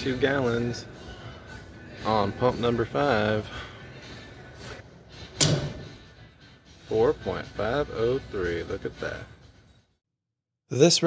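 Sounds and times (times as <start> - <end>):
sharp clunk: 5.4 - 6.0.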